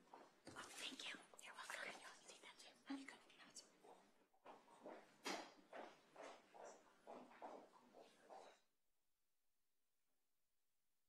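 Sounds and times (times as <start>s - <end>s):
faint whispering voices: 0.5s - 3.7s.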